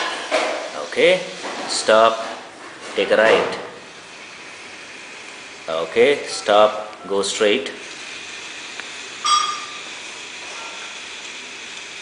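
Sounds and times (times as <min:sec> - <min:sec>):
short beep: 0:09.2 - 0:09.9.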